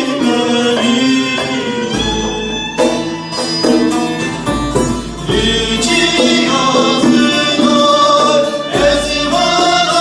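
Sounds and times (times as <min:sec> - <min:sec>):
saz playing: 0:00.0 - 0:10.0
violin melody: 0:01.2 - 0:06.7.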